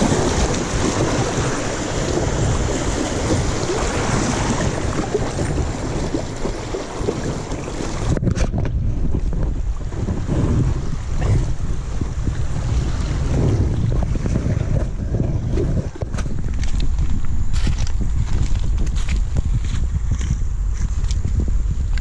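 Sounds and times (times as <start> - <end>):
river rapid rushing: 0.0 - 8.2
wind buffeting microphone: 0.0 - 22.0.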